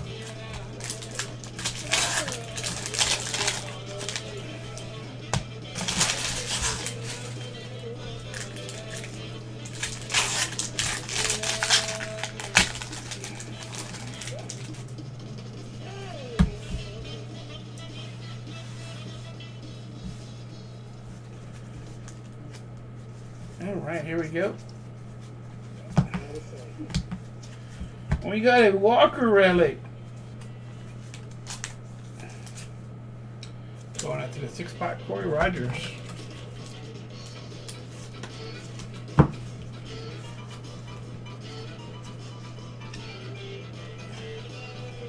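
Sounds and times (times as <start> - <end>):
steady low hum: 0.0 - 45.0
foil wrappers tearing and crinkling: 0.2 - 4.8, 5.7 - 7.4, 8.2 - 15.0, 31.2 - 32.7.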